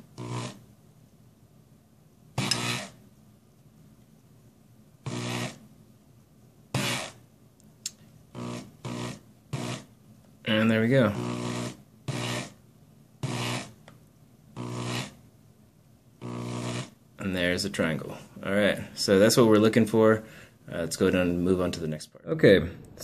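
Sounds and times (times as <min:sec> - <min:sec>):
small electric motor running: 0:00.2 - 0:00.6, 0:02.4 - 0:03.0, 0:05.1 - 0:05.6, 0:06.8 - 0:07.2, 0:08.4 - 0:09.9, 0:11.1 - 0:12.6, 0:13.2 - 0:13.8, 0:14.6 - 0:15.2, 0:16.2 - 0:17.0.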